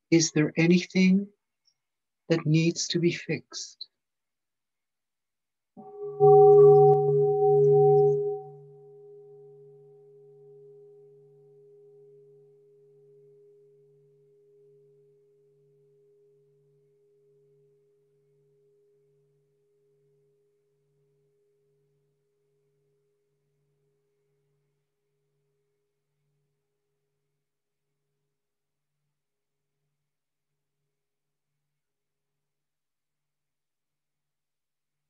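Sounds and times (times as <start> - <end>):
singing bowl ringing: 5.8 - 12.4.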